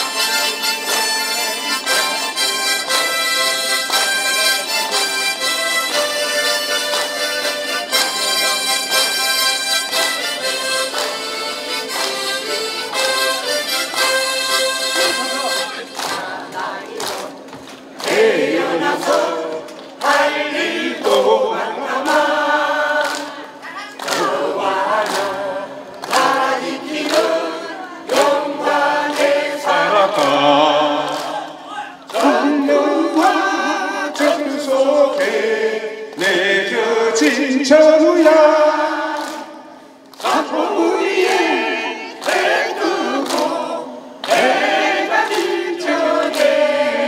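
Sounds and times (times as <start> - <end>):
group singing in unison: 0.0 - 2.7, 16.0 - 47.0
steady beat: 24.1 - 39.5.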